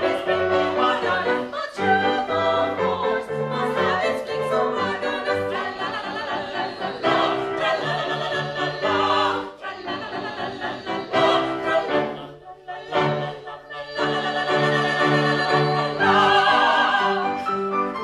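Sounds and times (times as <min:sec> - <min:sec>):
ensemble singing in classical style: 0:00.0 - 0:18.0.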